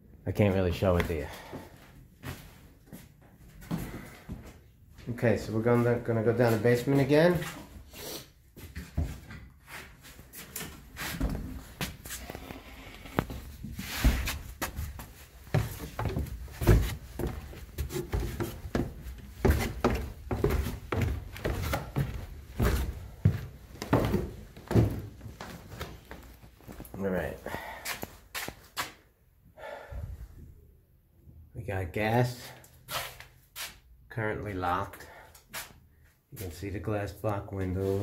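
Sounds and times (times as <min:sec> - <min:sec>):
footsteps down stairs: 0:00.9 - 0:07.8, 0:10.2 - 0:29.0.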